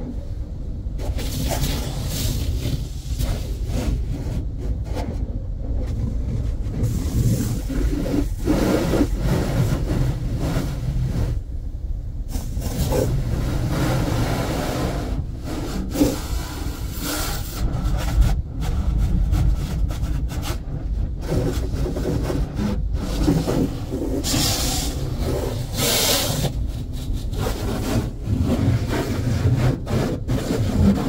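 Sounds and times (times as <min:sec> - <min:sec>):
steady low rumble: 0:00.0 - 0:31.0
car wash scrubbing the body: 0:00.9 - 0:31.0.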